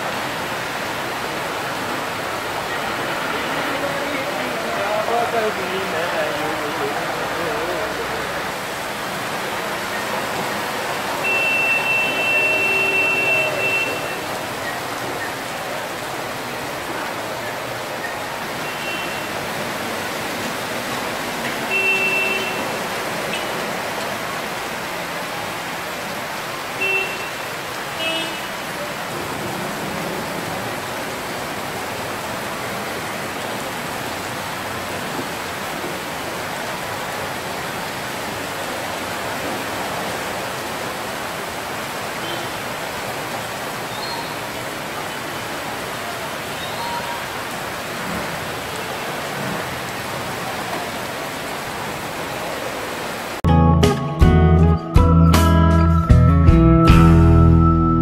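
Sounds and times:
heavy rain on a flooded street: 0.0s - 53.5s
vehicle horn beeps: 11.2s - 14.4s, 18.6s - 19.4s, 21.7s - 23.6s, 26.8s - 27.4s, 42.2s - 42.6s.

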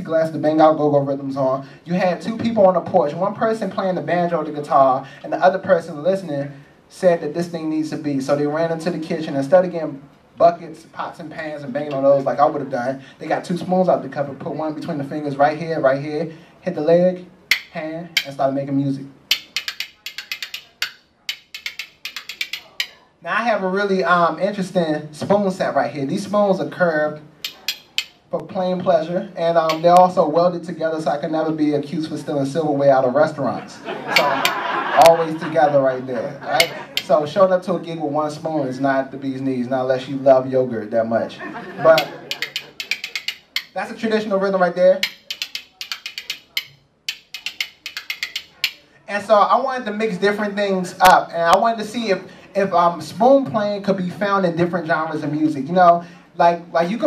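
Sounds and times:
spoons clicking rhythmically: 17.5s - 18.4s, 19.2s - 23.0s, 27.4s - 28.4s, 29.6s - 30.0s, 34.1s - 35.2s, 36.5s - 37.2s, 41.9s - 43.8s, 45.0s - 48.9s.

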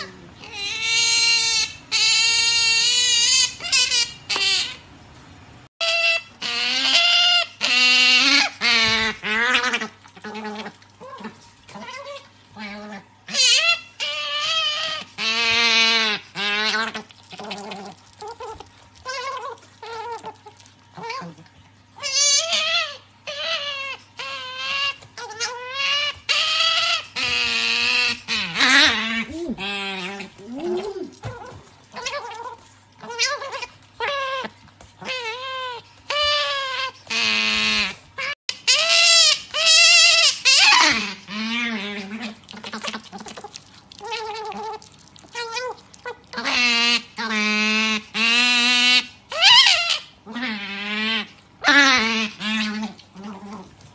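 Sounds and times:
otter squealing: 5.8s - 53.6s.

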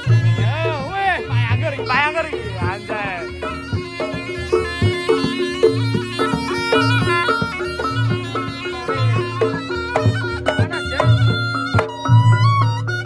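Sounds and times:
drums and gongs: 0.0s - 13.0s
reedy shawm melody: 0.0s - 13.0s.

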